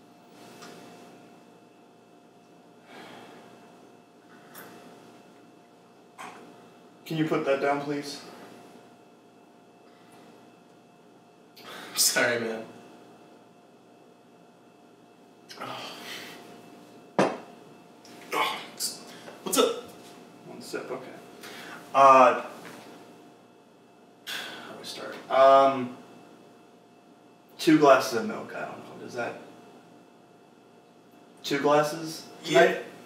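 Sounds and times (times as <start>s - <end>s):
steady electrical hum: 0.0s - 33.0s
glass knocking on hard surface: 17.2s - 17.4s.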